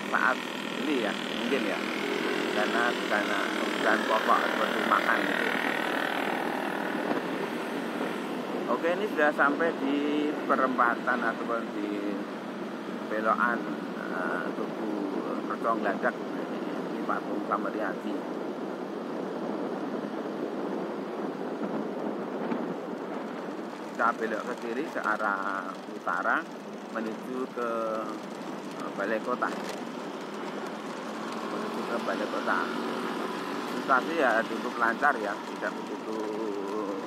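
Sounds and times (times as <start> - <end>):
road and traffic noise: 0.0 - 37.0
wind on microphone: 18.2 - 24.5.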